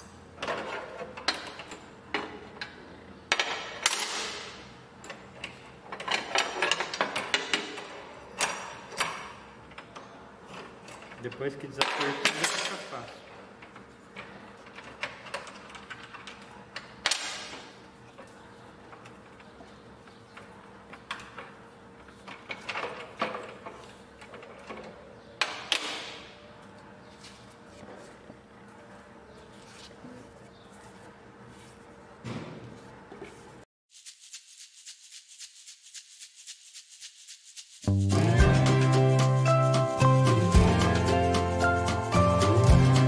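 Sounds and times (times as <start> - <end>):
quiet music: 37.9 - 43.0.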